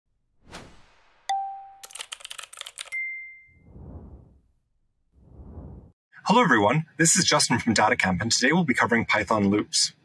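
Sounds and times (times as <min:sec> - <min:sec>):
whoosh: 0:00.4 - 0:01.3, 0:03.6 - 0:06.0
keyboard typing clicks: 0:01.8 - 0:03.0
low whoosh: 0:03.6 - 0:06.0.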